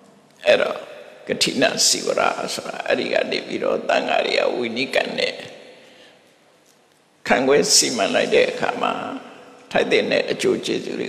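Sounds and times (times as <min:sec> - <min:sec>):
faint background hiss: 0:00.0 - 0:11.0
man preaching through microphone: 0:00.4 - 0:05.6, 0:07.2 - 0:11.0.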